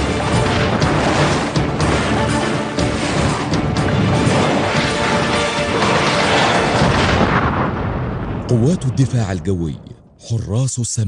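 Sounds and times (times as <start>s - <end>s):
loud explosion rumble: 0.0s - 10.2s
man narrating: 8.5s - 11.0s.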